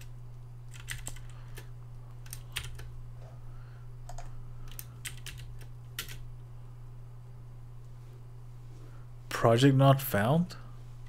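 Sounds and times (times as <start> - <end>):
low electrical hum: 0.0 - 11.0
keyboard keys clicking: 0.7 - 2.9, 4.1 - 6.2.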